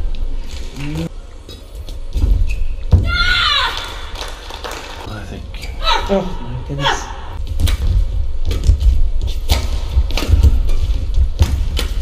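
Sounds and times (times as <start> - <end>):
rackets striking shuttlecock: 9.4 - 12.0.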